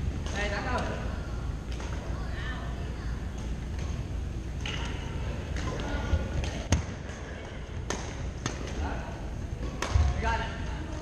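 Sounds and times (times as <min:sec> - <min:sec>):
low rumble of gym hall: 0:00.0 - 0:11.0.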